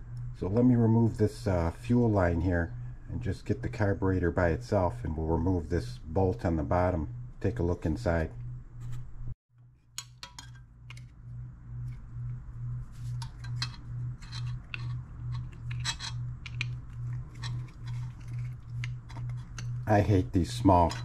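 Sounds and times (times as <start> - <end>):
low pulsing hum: 0.0 - 21.0.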